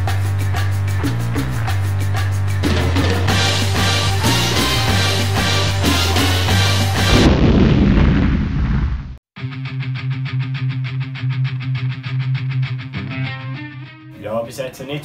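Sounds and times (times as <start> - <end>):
dense loud music track: 0.0 - 7.4
cinematic boom: 6.9 - 9.2.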